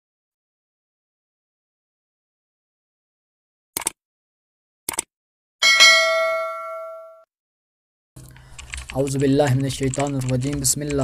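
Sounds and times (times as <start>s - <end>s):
notification bell ding: 5.6s - 7.2s.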